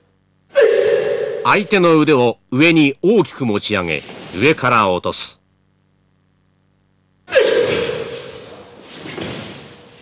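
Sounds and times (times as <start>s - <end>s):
loud martial arts shout: 0.5s - 1.8s, 7.3s - 8.6s.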